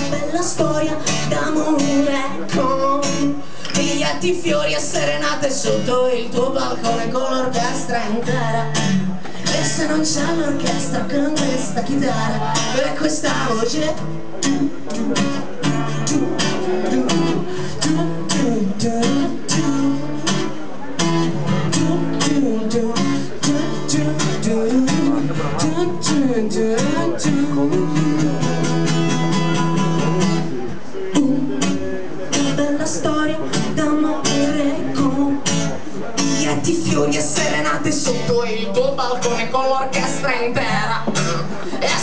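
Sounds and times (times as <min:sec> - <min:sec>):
person singing: 0:00.0 - 0:20.6, 0:21.6 - 0:30.4, 0:31.0 - 0:42.0
acoustic guitar strumming: 0:00.0 - 0:42.0.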